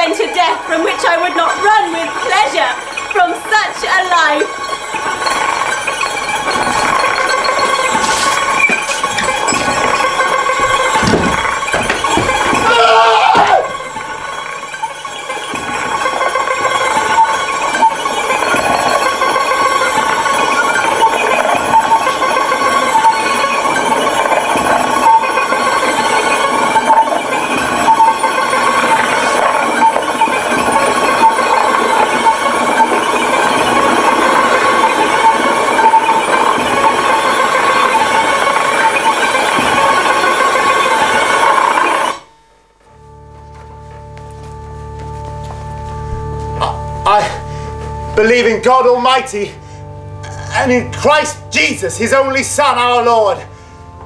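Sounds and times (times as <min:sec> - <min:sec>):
steady ringing tones: 0:00.0 - 0:54.0
mechanical clanking din: 0:00.1 - 0:42.4.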